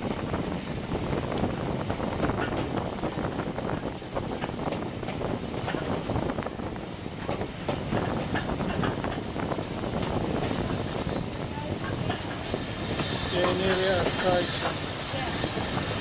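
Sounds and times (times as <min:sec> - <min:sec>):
train wheels rumbling on rail: 0:00.0 - 0:16.0.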